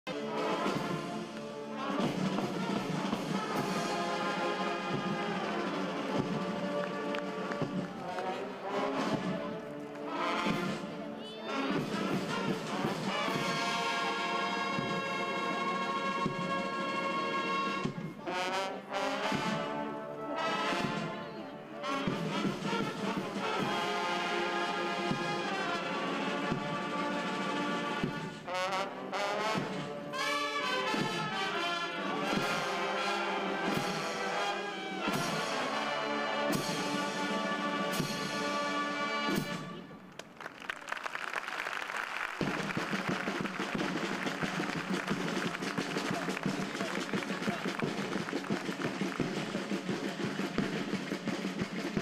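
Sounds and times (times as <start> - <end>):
military marching band playing: 0.1 - 52.0.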